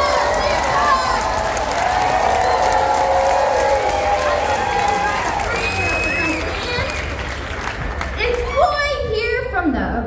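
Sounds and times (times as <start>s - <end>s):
audience cheering: 0.0s - 8.6s
clapping: 0.0s - 8.6s.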